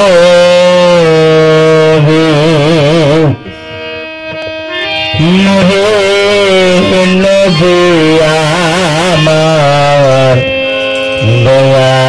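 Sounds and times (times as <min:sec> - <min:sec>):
harmonium: 0:00.0 - 0:12.0
man singing held note: 0:00.0 - 0:12.0.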